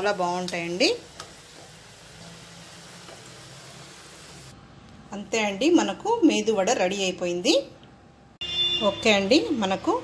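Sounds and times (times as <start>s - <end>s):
hot oil sizzling: 0.0s - 4.6s.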